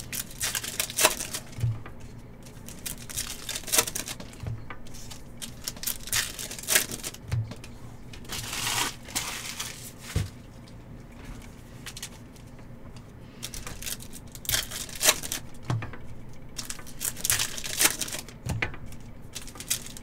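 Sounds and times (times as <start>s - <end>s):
foil wrapper crinkling and tearing: 0.0s - 1.6s, 2.6s - 4.2s, 5.4s - 7.2s, 8.2s - 10.2s, 13.4s - 15.4s, 16.6s - 18.3s, 19.4s - 20.0s.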